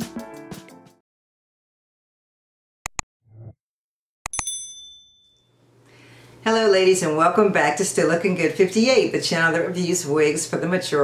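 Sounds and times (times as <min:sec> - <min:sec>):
bright bell ding: 0:04.3 - 0:05.6.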